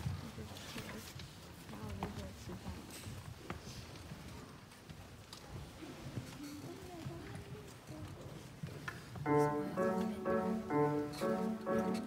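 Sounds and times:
audience murmur: 9.2s - 12.0s.

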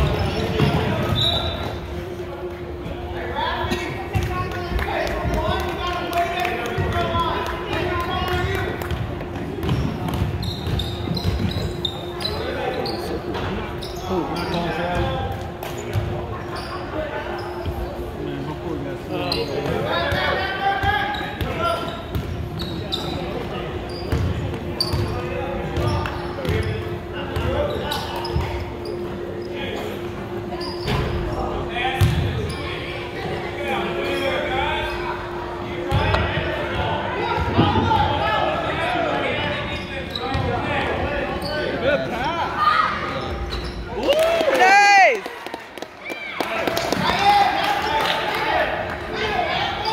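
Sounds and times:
voices of players and spectators: 0.0s - 49.9s.

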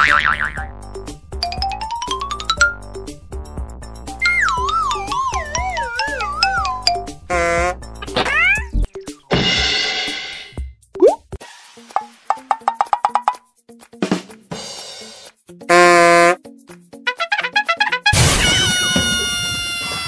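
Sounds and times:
light background music: 0.2s - 18.1s.

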